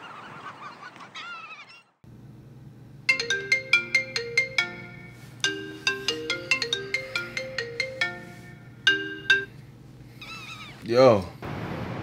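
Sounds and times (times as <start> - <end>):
phone ringtone melody: 3.1 - 9.6.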